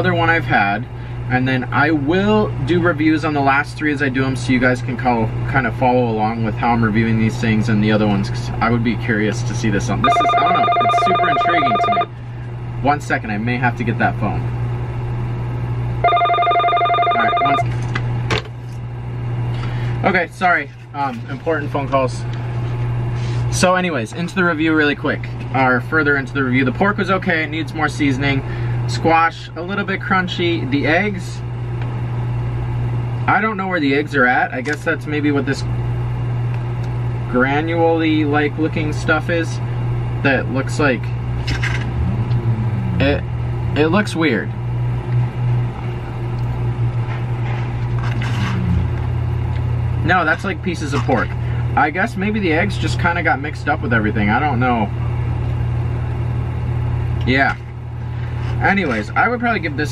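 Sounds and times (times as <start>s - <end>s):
steady low hum: 0.0s - 59.9s
telephone ringing: 10.0s - 12.2s, 16.0s - 17.7s.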